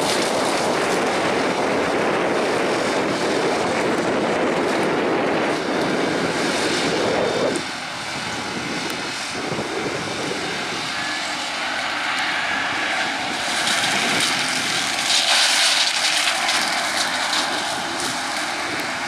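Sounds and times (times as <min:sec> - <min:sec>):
diesel tractor engine under load: 0:00.0 - 0:19.0
flail hedge cutter shredding branches: 0:00.0 - 0:19.0.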